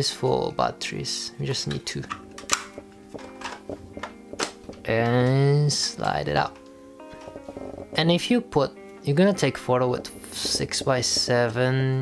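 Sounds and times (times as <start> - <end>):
soft background music: 0.0 - 12.0
plastic camera clicks and knocks: 2.0 - 4.8.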